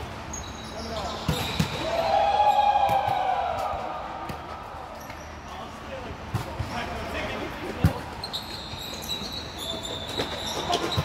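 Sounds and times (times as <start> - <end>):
players' voices: 0.6 - 8.2.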